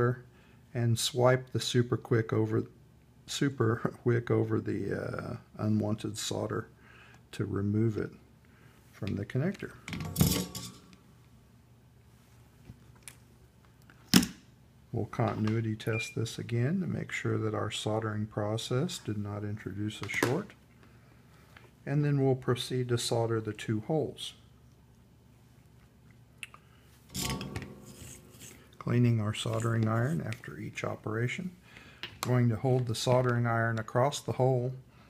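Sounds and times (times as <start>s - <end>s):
metallic clatter of tools: 9.9s - 11.0s, 27.1s - 28.6s
soldering iron tip scraping: 27.1s - 28.8s.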